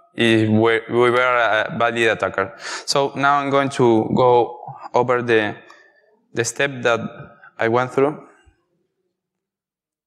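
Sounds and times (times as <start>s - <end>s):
man speaking: 0.0s - 5.7s, 6.3s - 8.4s.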